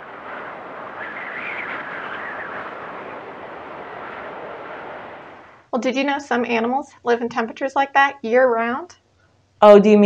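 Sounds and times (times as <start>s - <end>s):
outdoor rushing hiss: 0.0s - 5.7s.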